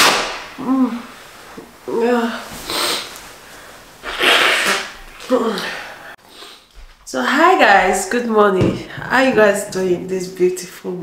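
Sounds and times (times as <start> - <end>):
woman sneezing: 4.0 - 5.7.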